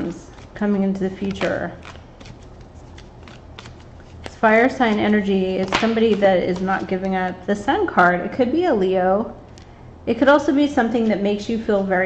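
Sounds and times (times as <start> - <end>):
cards being shuffled: 0.0 - 7.1
cards clicking together: 1.2 - 4.4.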